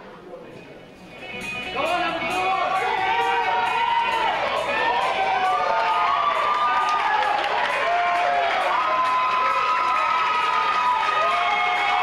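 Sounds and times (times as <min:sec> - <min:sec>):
audience cheering and yelling: 0:02.2 - 0:12.0
scattered clapping: 0:05.3 - 0:12.0.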